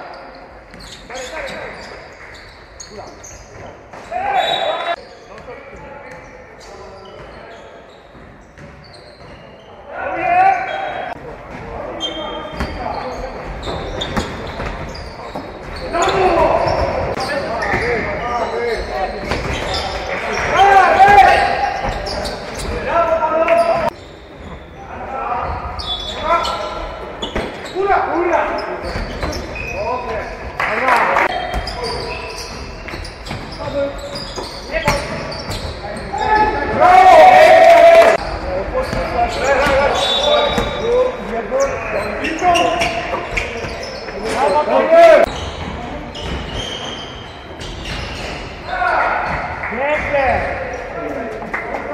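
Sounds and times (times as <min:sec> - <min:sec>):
basketball bouncing on wooden court: 0:08.2 - 0:09.4, 0:38.8 - 0:40.8
players shouting: 0:19.6 - 0:24.0, 0:36.0 - 0:41.1, 0:44.3 - 0:45.3.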